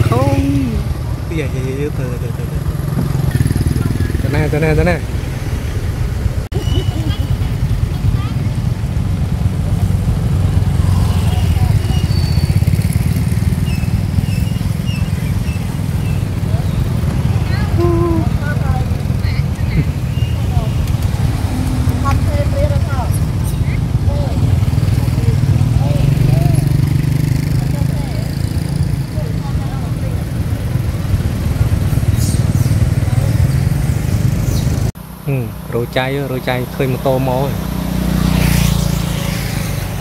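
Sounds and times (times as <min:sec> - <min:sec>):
road traffic rumble: 0:00.0 - 0:40.0.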